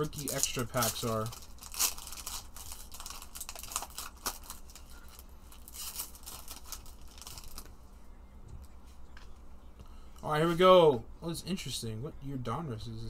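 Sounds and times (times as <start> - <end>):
foil wrapper tearing and crinkling: 0.0 - 7.7.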